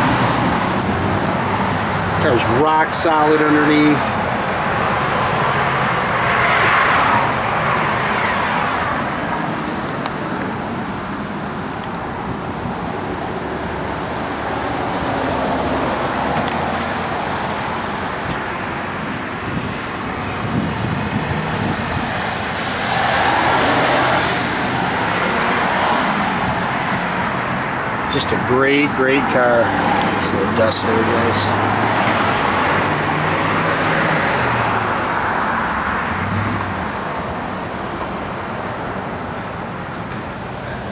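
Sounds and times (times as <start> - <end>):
road traffic hum: 0.0 - 40.9
vehicles passing by: 0.0 - 40.9.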